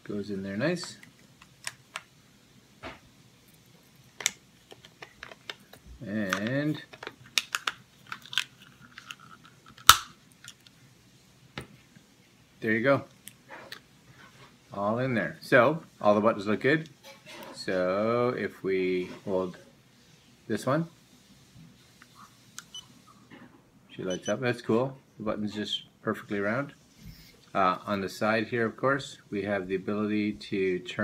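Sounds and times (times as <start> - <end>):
plastic case handling noise: 4.0 - 10.7.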